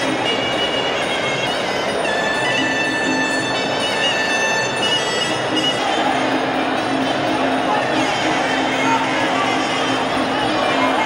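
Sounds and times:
background din: 0.0s - 11.0s
oboe playing long held notes: 0.0s - 11.0s.

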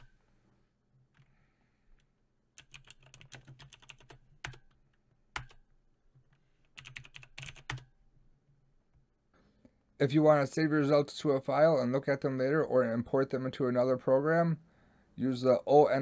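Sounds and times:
typing on computer keyboard: 2.6s - 5.6s, 6.2s - 7.9s.

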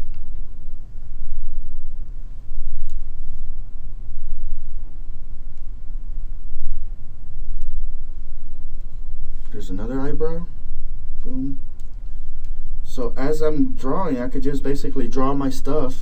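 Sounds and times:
low rumble: 0.0s - 16.0s.

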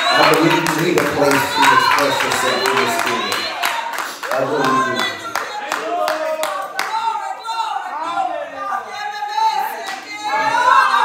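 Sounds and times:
rhythmic hand clapping: 0.0s - 7.2s
voices raised in worship: 0.0s - 11.0s.

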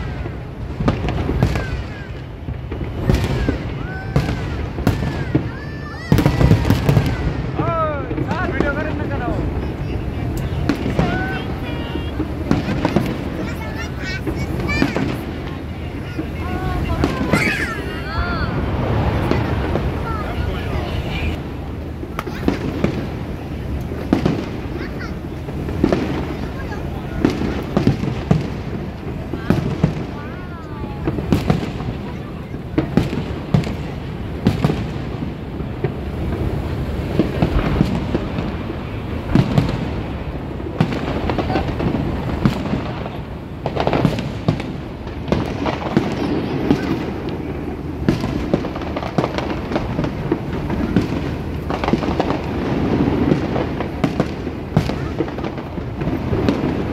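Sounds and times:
fireworks bursting with sharp bangs: 0.0s - 56.9s.

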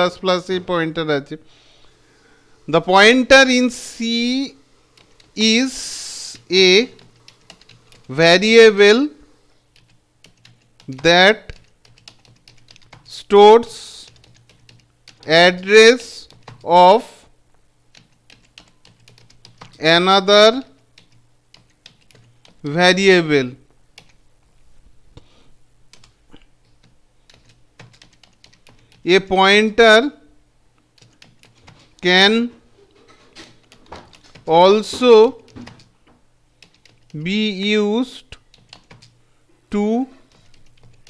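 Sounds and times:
keystrokes on computer keyboard: 7.0s - 8.2s, 9.7s - 13.1s, 14.0s - 15.3s, 16.2s - 16.7s, 17.9s - 19.8s, 21.0s - 22.7s, 24.0s - 24.2s, 25.9s - 29.1s, 31.0s - 32.1s, 33.4s - 35.9s, 36.6s - 37.2s, 38.3s - 39.2s, 40.3s - 41.0s.

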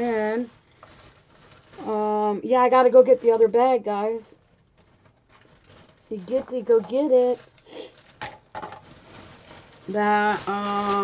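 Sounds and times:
woman speaking: 0.0s - 0.5s, 1.8s - 4.3s, 6.1s - 7.4s, 9.9s - 11.0s
faint rustling: 0.0s - 11.0s.

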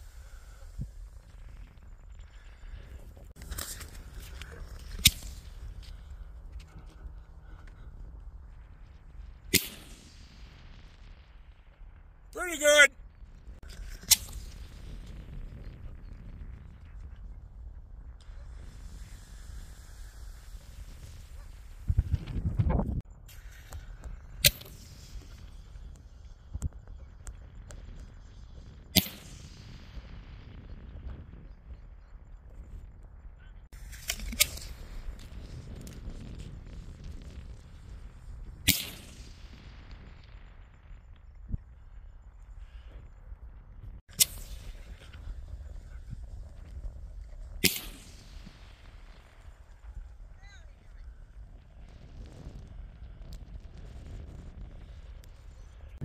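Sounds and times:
deep fireworks burst: 0.0s - 56.0s
fireworks bangs: 2.4s - 12.9s.

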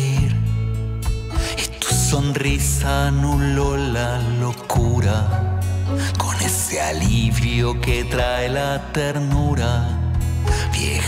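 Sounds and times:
guitar accompaniment: 0.0s - 11.0s
man singing: 0.0s - 11.0s.

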